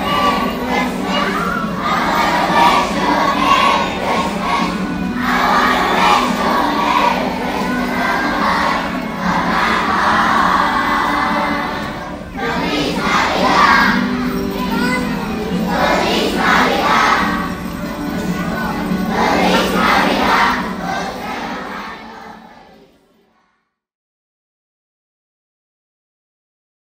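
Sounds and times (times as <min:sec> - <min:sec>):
children singing a carol: 0:00.0 - 0:23.5
children shouting and cheering: 0:00.0 - 0:23.6.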